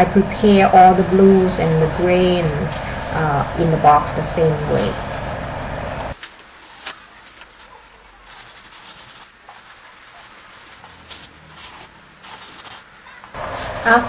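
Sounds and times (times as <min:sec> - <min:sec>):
pastel scratching on paper: 0:00.4 - 0:12.9.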